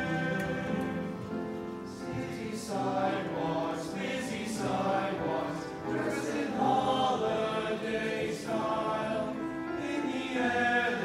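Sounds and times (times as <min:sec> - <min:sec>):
male choir singing in harmony: 0:00.0 - 0:11.0
upright piano: 0:00.0 - 0:11.0.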